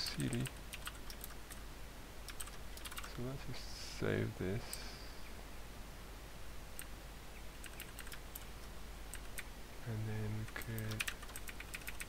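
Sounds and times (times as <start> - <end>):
keyboard typing: 0.1 - 1.6, 2.3 - 3.1, 7.6 - 8.5, 9.1 - 9.5, 10.5 - 12.0.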